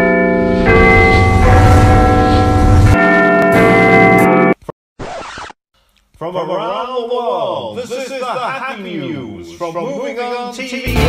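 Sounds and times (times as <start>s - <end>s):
theme music with bell-like chimes: 0.0s - 4.6s.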